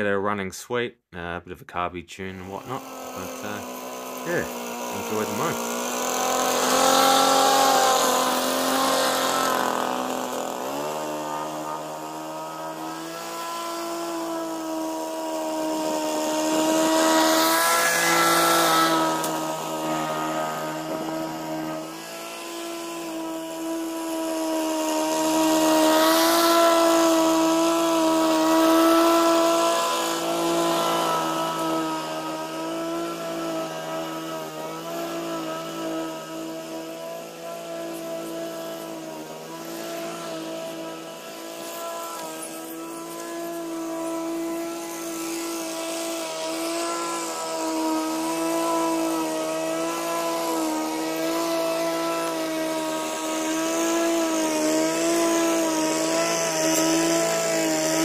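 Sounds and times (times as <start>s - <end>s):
lawn mower engine running: 2.5s - 58.0s.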